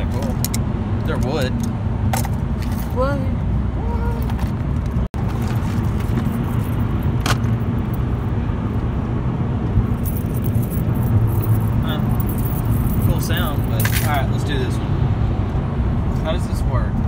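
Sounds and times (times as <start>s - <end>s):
car cabin road noise: 0.0s - 17.0s
metallic necklace clinks: 10.0s - 14.3s.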